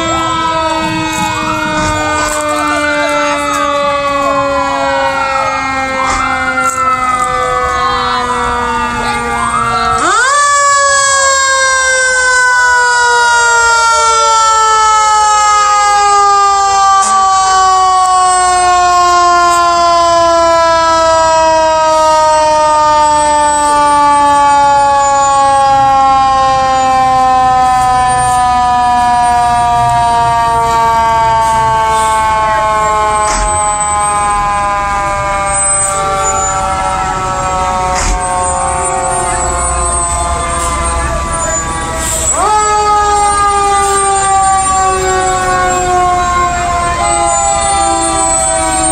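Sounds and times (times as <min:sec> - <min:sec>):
fire engine siren wailing: 0:00.0 - 0:48.9
truck engines rumbling: 0:00.0 - 0:48.9.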